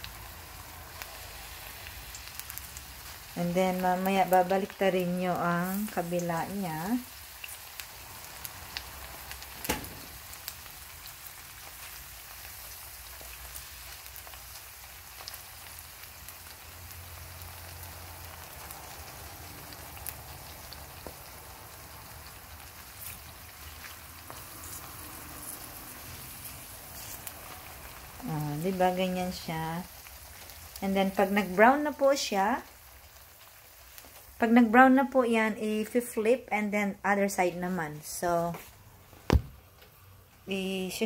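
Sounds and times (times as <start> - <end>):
eggplant sizzling in oil: 0.0 - 39.4, 40.4 - 41.0.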